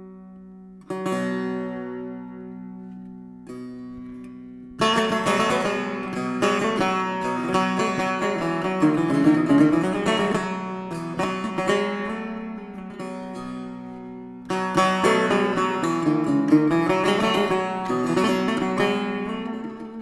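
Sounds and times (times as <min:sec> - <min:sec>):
plucked long-necked lute: 0:00.0 - 0:20.0.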